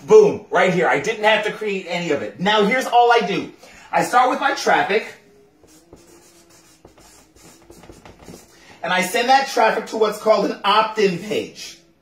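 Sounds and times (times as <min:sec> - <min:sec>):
marker scratching on paper: 0:05.6 - 0:08.7.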